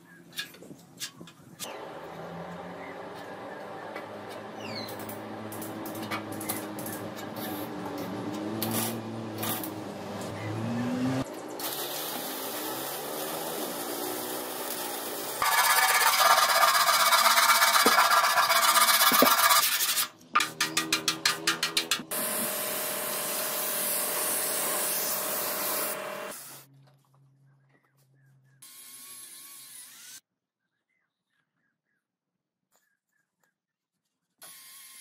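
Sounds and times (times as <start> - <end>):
sandpaper rasping on metal: 11.6 - 22.6.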